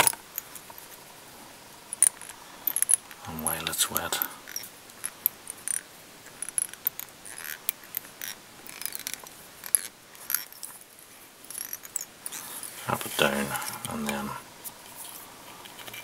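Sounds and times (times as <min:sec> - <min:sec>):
small clicks and light scrapes: 0:01.9 - 0:10.9, 0:11.5 - 0:16.0.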